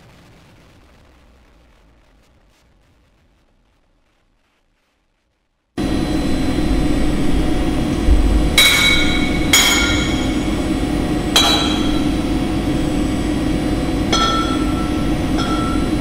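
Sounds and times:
low hum: 5.8 - 16.0
ringing metallic strikes: 5.8 - 16.0.

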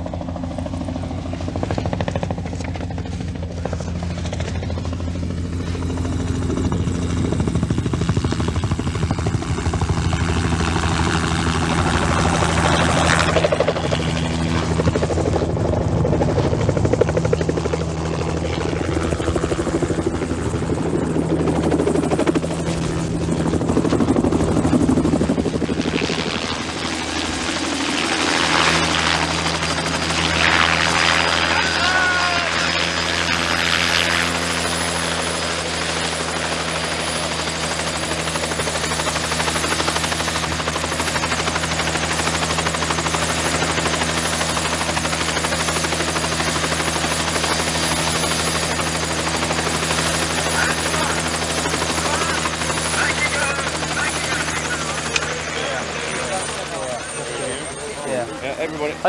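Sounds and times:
helicopter rotor beating: 0.0 - 59.0.

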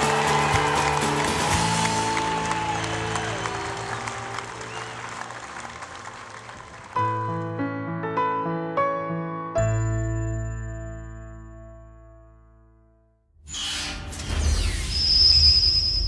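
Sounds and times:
applause: 0.0 - 7.4
background music: 0.0 - 13.0
piano melody: 6.8 - 13.2.

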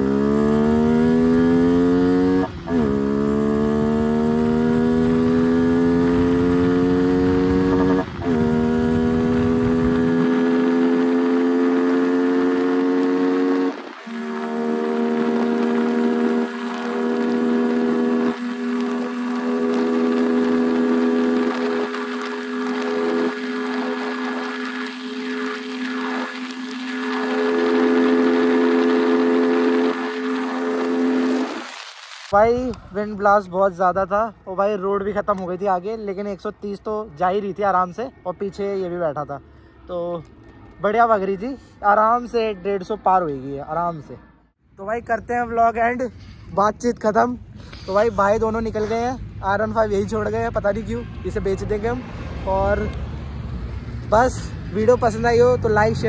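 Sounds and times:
motorcycle engine accelerating: 0.0 - 31.9, 47.9 - 56.0
heavy wind noise: 7.2 - 10.2.

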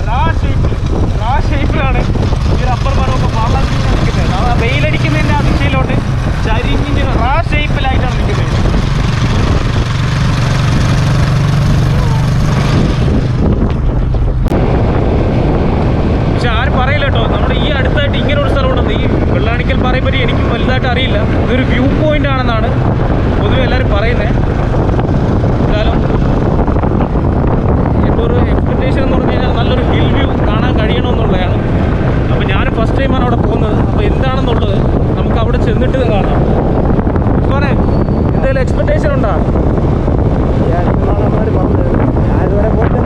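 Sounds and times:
vehicle running: 0.0 - 43.0
wind rumble on microphone: 0.0 - 43.0.

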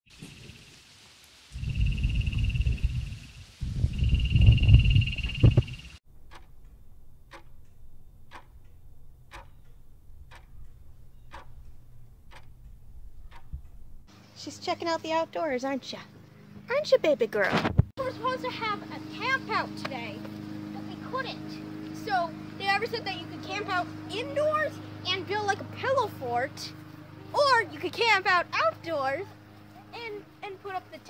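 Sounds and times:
loud low rumbling: 1.6 - 14.1
clock ticking: 6.1 - 13.8.

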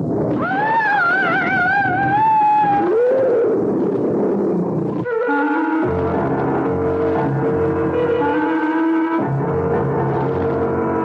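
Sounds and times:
lower rising and falling cry: 0.3 - 6.3
high wavering creature cry: 0.4 - 3.5.

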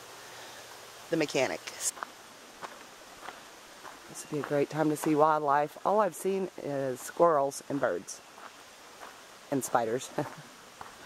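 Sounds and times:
faint background hiss: 0.0 - 11.0
footsteps on paved trail: 1.9 - 6.4, 7.0 - 11.0.

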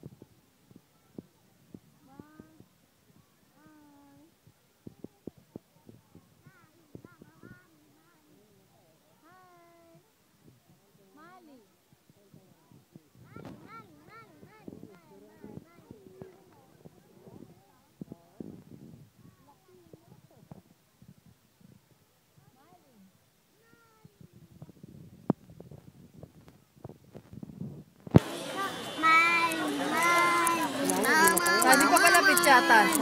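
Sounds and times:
low murmuring: 28.2 - 33.0
girl calling out: 29.3 - 33.0.

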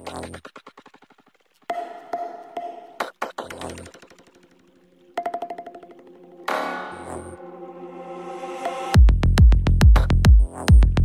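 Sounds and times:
electronic dance music stuttering: 5.2 - 10.8.

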